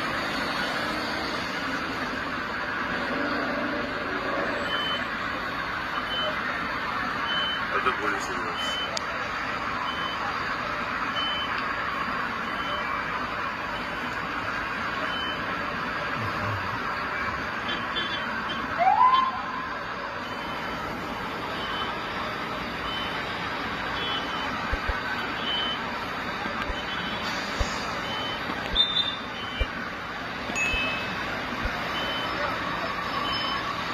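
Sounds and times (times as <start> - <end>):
city street traffic: 0.0 - 33.9.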